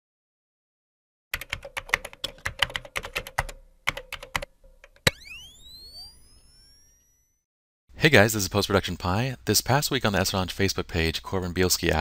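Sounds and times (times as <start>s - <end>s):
keyboard typing clicks: 1.4s - 5.2s
rising tones: 5.0s - 7.4s.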